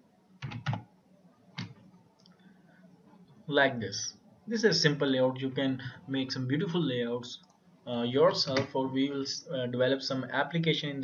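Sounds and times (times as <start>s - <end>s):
computer keyboard keystrokes: 0.4s - 0.8s.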